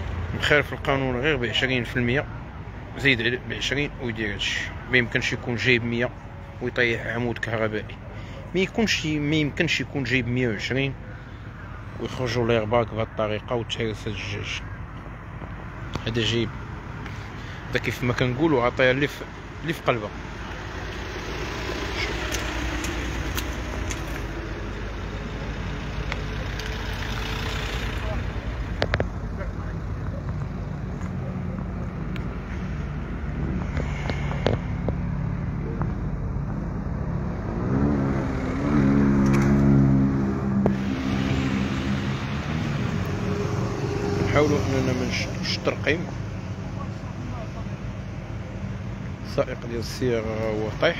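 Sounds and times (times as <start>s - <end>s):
street traffic noise: 0.0s - 50.9s
vehicle engine revving: 20.1s - 49.0s.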